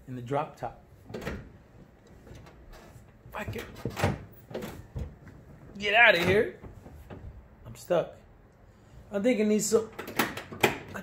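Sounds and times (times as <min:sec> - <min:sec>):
faint door handling noise: 0:01.0 - 0:07.6.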